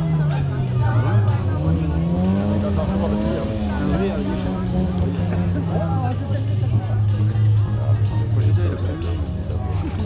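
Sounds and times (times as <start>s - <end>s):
car engine running: 0.0s - 10.0s
voices: 0.0s - 10.0s.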